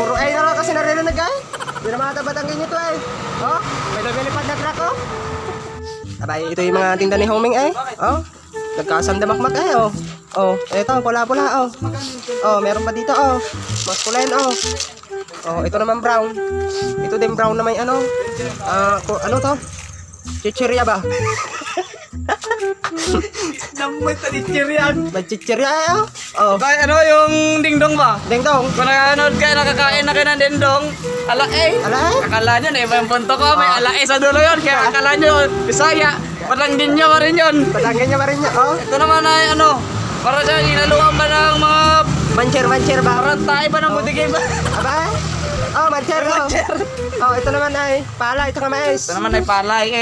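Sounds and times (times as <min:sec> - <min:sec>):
voices: 0:00.0 - 0:21.8, 0:22.4 - 0:50.0
background music with low beat: 0:00.0 - 0:50.0
man laughing: 0:01.4 - 0:02.0, 0:20.9 - 0:23.9, 0:43.9 - 0:47.5.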